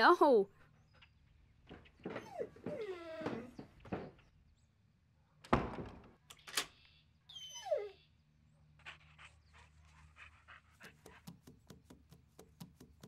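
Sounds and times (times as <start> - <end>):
steps on wooden floorboards: 1.6 - 4.3
dog whimpering: 2.1 - 3.8, 7.3 - 8.1
door shutting with a thud: 5.5 - 6.2.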